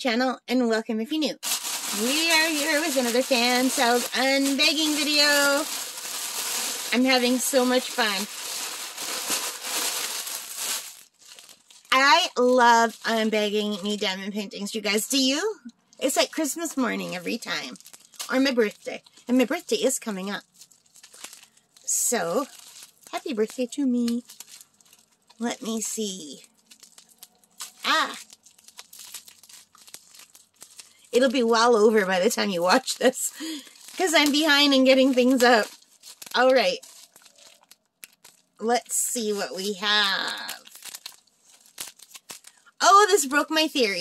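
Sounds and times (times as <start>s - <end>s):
plastic bubble mailer crinkling: 1.4s - 15.3s, 16.0s - 44.0s.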